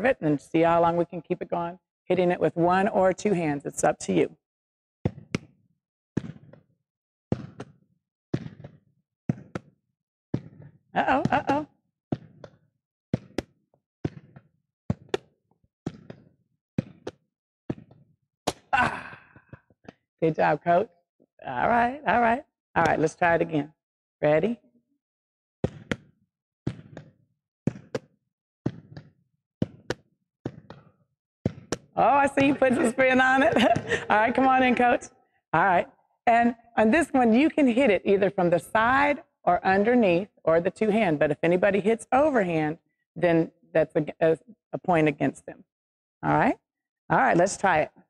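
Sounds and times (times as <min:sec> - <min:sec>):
hand striking ball: 0:05.0 - 0:05.6, 0:07.3 - 0:18.7, 0:25.6 - 0:34.0
hands striking ball: 0:05.0 - 0:05.6, 0:13.2 - 0:15.3, 0:26.7 - 0:30.8, 0:31.5 - 0:32.6
ball bouncing on wooden floor: 0:05.0 - 0:06.7, 0:07.3 - 0:18.7, 0:22.8 - 0:23.5, 0:25.6 - 0:35.0, 0:37.1 - 0:41.8.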